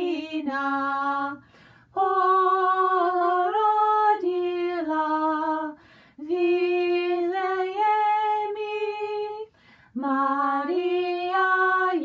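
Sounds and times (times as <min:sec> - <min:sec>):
woman singing a hymn unaccompanied: 0:00.0 - 0:12.0
short breaths: 0:01.4 - 0:01.9, 0:05.8 - 0:06.2, 0:09.5 - 0:10.0.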